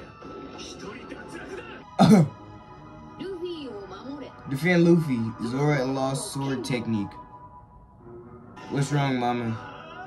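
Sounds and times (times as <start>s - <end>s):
person clearing throat: 2.0s - 2.4s.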